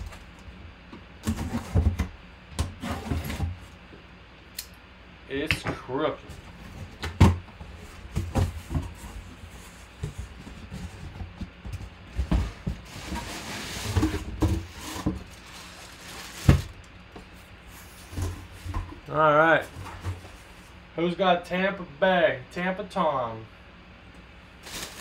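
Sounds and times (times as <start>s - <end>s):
cardboard knocks and scrapes: 6.3s - 19.0s
plastic bag rustle: 12.8s - 16.9s, 24.6s - 25.0s.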